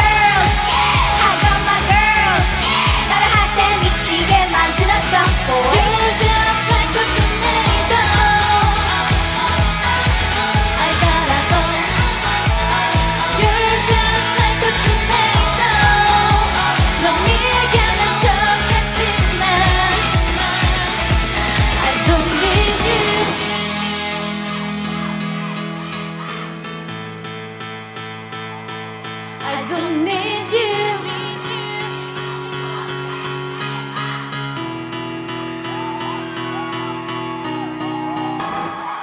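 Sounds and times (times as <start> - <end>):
upbeat pop dance music with vocals: 0.0 - 27.2, 28.6 - 34.6.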